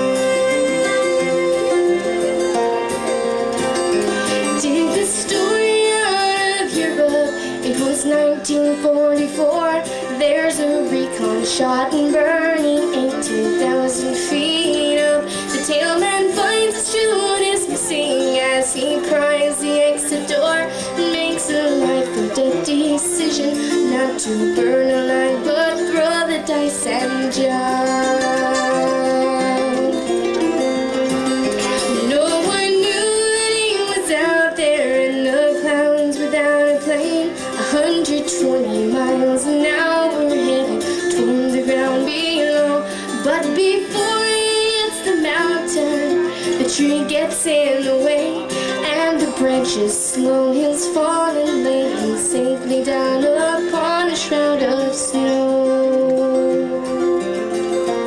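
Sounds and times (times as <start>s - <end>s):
woman singing: 0.0s - 2.5s, 4.0s - 30.6s, 31.5s - 57.5s
acoustic guitar picking: 0.0s - 58.0s
bouzouki picking: 0.0s - 58.0s.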